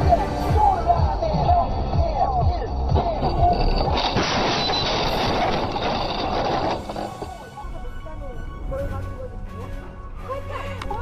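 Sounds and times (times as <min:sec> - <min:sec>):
car crash impact and scraping: 0:03.0 - 0:07.6.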